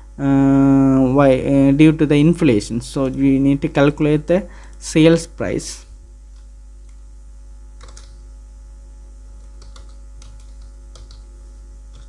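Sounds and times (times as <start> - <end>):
low electrical hum: 0.0 - 12.0
computer keyboard typing: 7.8 - 8.2, 9.4 - 11.3.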